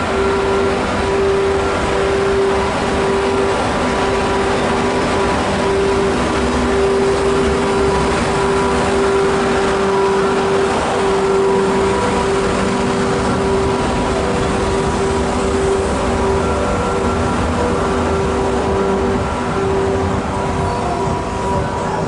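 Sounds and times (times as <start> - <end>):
electric locomotive passing: 0.0 - 22.0
steady locomotive hum: 0.0 - 22.0
train coaches rolling past: 0.0 - 22.0.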